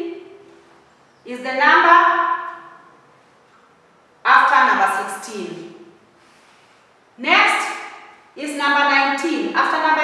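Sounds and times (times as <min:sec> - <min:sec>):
woman's voice: 0:01.3 - 0:02.4, 0:04.3 - 0:05.7, 0:07.2 - 0:10.0.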